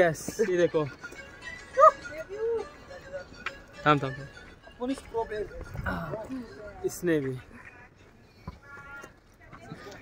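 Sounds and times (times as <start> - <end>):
faint voices: 5.0 - 10.0.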